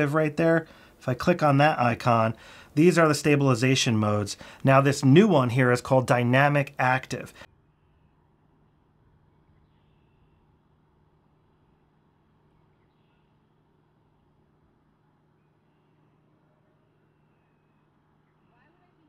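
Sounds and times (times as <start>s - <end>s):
faint low hum: 0.0s - 19.0s
faint high chirps: 15.2s - 19.0s.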